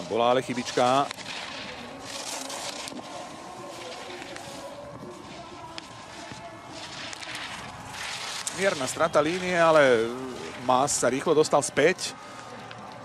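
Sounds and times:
skis scraping on snow: 0:00.0 - 0:12.6
faint distant voices: 0:00.0 - 0:13.0.

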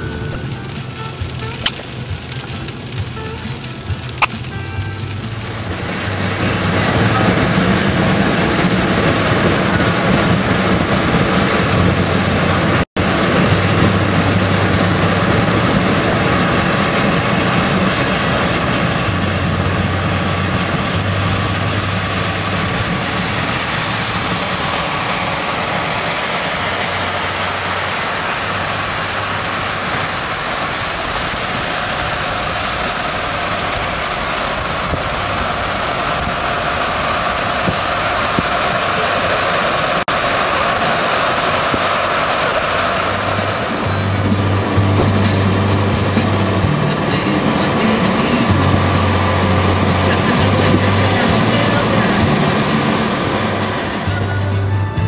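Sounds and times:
tyre hiss on wet road: 0:00.0 - 0:54.9
low engine drone: 0:00.0 - 0:55.0
rain: 0:00.0 - 0:55.0.

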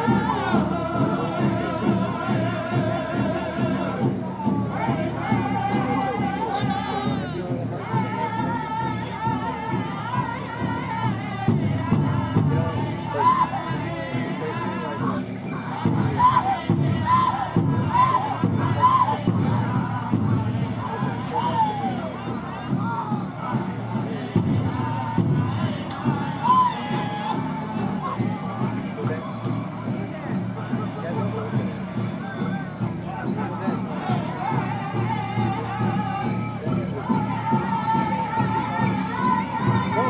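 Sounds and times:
crowd calling and cheering: 0:00.0 - 0:40.0
music: 0:00.0 - 0:40.0.

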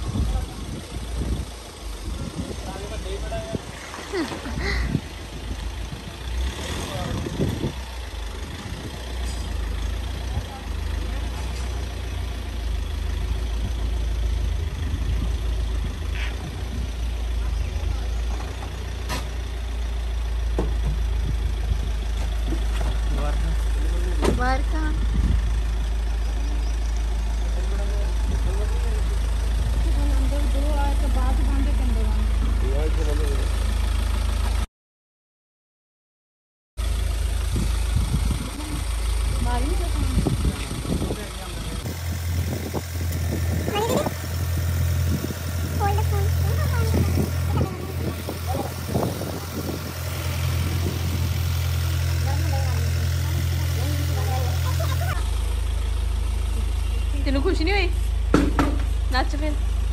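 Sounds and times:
people's voices: 0:00.0 - 0:12.3, 0:25.9 - 0:33.7, 0:38.4 - 0:55.7
diesel engine rumbling: 0:00.0 - 0:34.7, 0:36.8 - 0:59.9.

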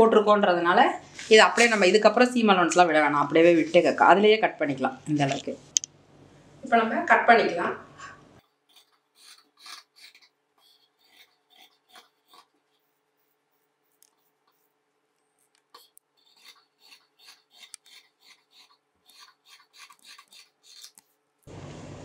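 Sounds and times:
scissors snipping through fabric: 0:15.5 - 0:21.2.

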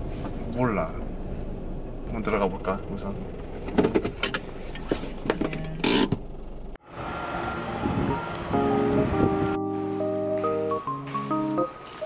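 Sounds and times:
car cabin noise: 0:00.0 - 0:09.5
background music with held notes: 0:07.2 - 0:12.0.

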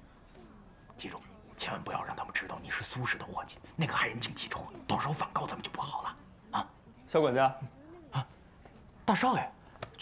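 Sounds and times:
man whispering: 0:01.0 - 0:06.8.

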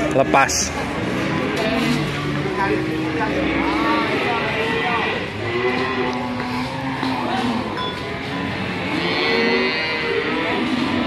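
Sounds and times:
cow lowing: 0:00.8 - 0:11.0.

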